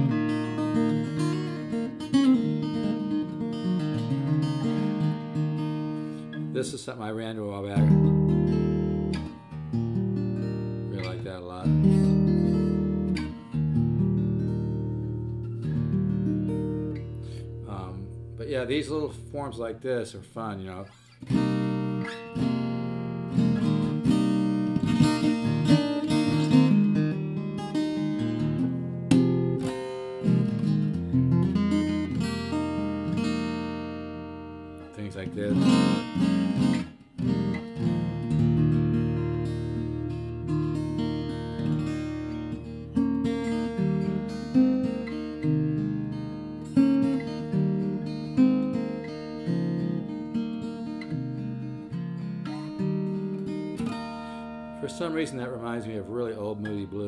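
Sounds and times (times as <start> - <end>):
acoustic guitar melodic notes: 0.0 - 57.0.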